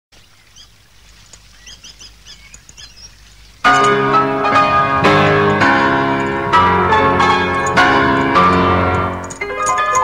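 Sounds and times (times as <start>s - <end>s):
faint bird chirps: 0.2s - 3.6s
grand piano chords: 3.4s - 10.0s.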